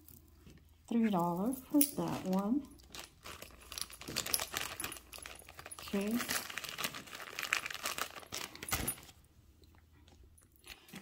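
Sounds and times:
jewelry clinking and rattling: 0.9s - 9.1s.

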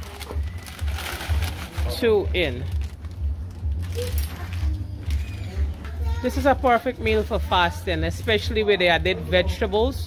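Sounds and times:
plastic packet rustle: 0.0s - 5.2s
music: 0.0s - 10.0s
steady low rumble: 0.6s - 5.2s.

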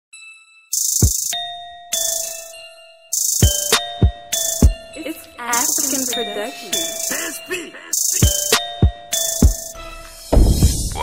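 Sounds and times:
bell-like chime: 0.1s - 10.3s
deep kick drum: 10.4s - 11.0s.

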